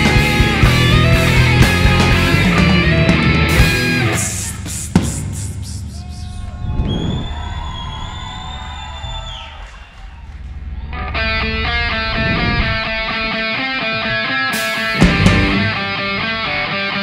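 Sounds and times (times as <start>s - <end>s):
held guitar tone bending down: 0.0s - 4.4s, 10.5s - 17.0s
live rock band: 0.0s - 5.0s, 13.3s - 17.0s
fast rhythmic guitar riff: 0.0s - 5.9s, 12.9s - 17.0s.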